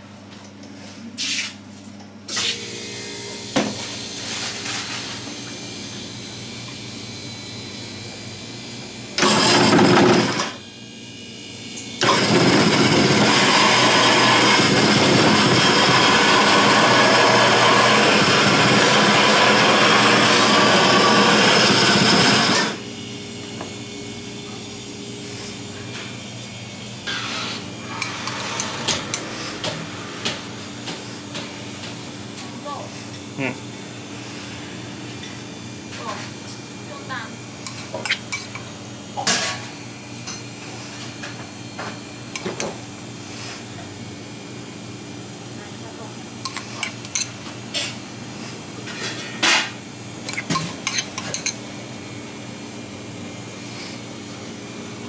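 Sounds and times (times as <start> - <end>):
ice shaver shaving ice: 9.2 - 10.6, 11.9 - 22.8, 27.1 - 29.7, 50.2 - 51.6.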